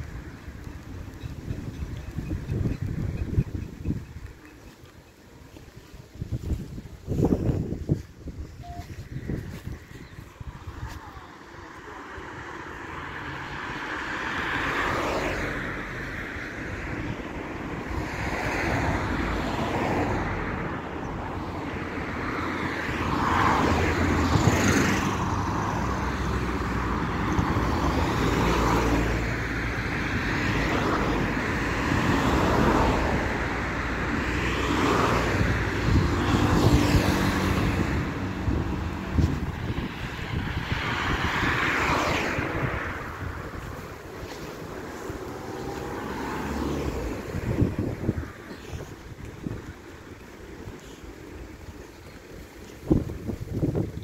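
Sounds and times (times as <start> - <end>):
cars passing by: 0.0 - 54.0.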